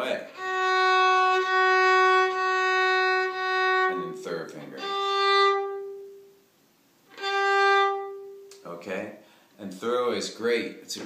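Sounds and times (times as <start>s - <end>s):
bowed fiddle note: 0.3s - 6.3s, 7.1s - 8.5s.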